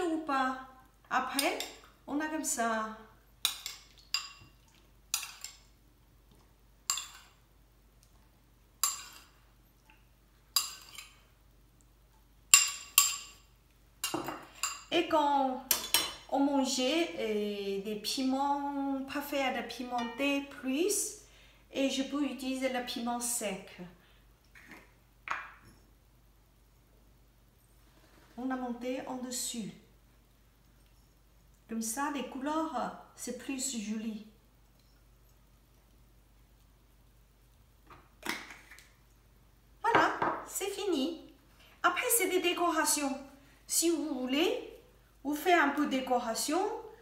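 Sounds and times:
metal spoon clinking on porcelain bowl: 0:03.4 - 0:04.5, 0:06.9 - 0:07.3, 0:08.8 - 0:09.3, 0:10.6 - 0:11.1, 0:12.5 - 0:14.9.

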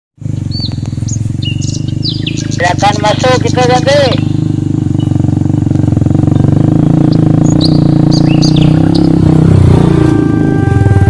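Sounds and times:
motorcycle engine running: 0:00.2 - 0:11.0
high whistled bird calls: 0:00.4 - 0:02.6, 0:04.2 - 0:05.2, 0:06.4 - 0:09.2.

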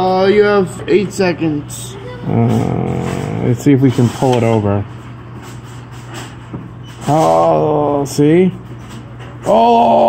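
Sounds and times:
claw machine mechanism humming: 0:00.0 - 0:10.0.

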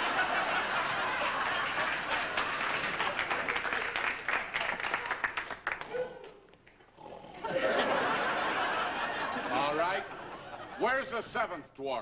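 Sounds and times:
audience laughing: 0:00.0 - 0:04.3, 0:07.4 - 0:11.0
audience applauding: 0:00.0 - 0:06.4.

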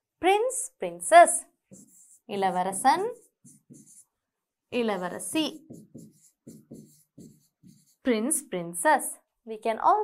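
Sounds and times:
stylus strokes on screen: 0:01.2 - 0:08.5.

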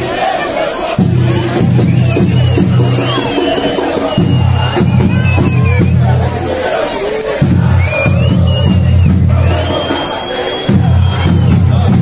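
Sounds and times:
crowd shouting and chanting: 0:00.0 - 0:12.0.

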